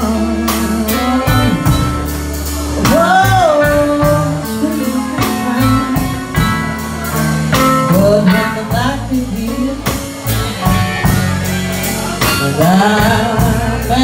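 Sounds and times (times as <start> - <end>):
woman singing: 0.0 - 2.1, 2.8 - 10.9, 12.2 - 14.0
bass guitar: 0.0 - 14.0
drum kit beat: 0.0 - 14.0
electric guitar: 0.0 - 14.0.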